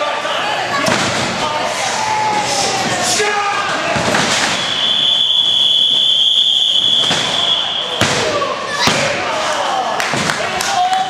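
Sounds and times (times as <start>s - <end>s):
high-pitched whistle: 4.4s - 8.2s.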